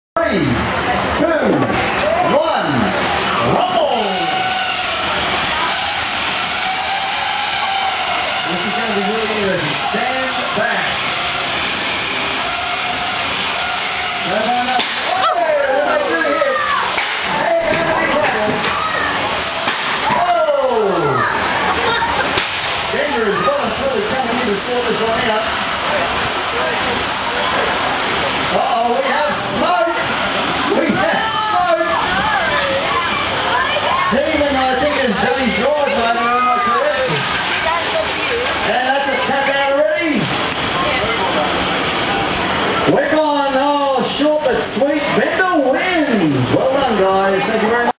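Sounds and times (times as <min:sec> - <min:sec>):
people talking and calling out: 0:00.2 - 0:48.0
steady rushing noise: 0:00.3 - 0:48.0.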